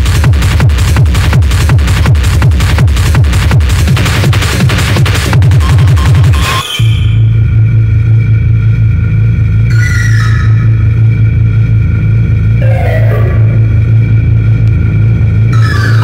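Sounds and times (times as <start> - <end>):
fast-pulsing bass line: 0.0 - 16.0
synth stab: 6.3 - 16.0.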